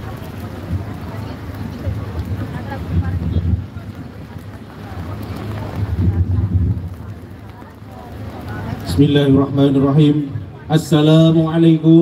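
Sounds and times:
wind buffeting a microphone: 0.0 - 10.6
faint crowd voices: 0.0 - 12.0.

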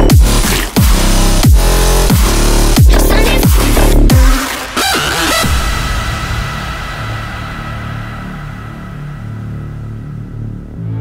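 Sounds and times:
held low synth notes: 5.2 - 11.0.

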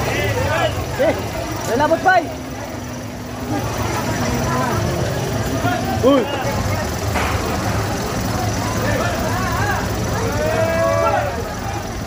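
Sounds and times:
crowd voices calling and chattering: 0.0 - 12.0.

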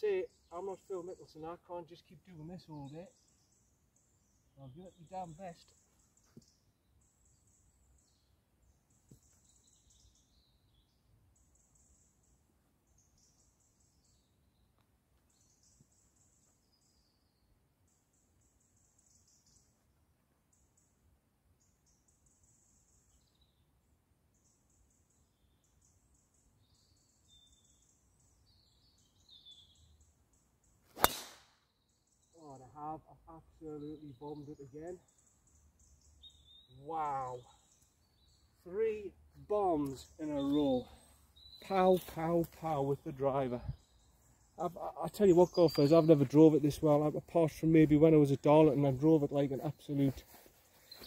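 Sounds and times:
golf driver striking ball: 31.0 - 31.5.

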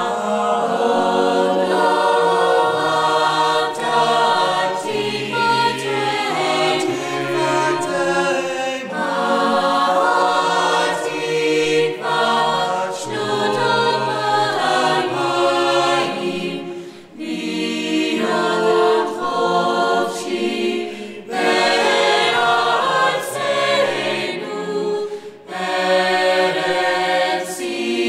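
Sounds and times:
choir singing held chords: 0.0 - 28.0.

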